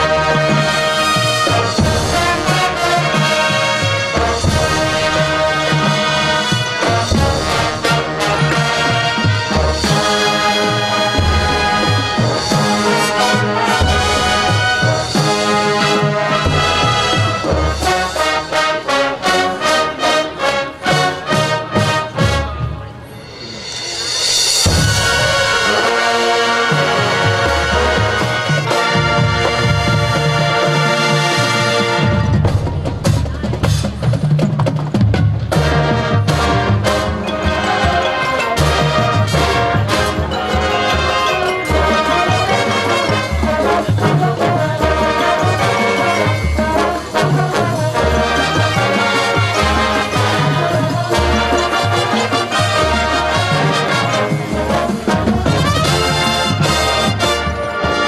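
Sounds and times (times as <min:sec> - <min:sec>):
drumline strokes: 0:00.0 - 0:58.0
marching band playing: 0:00.0 - 0:58.0.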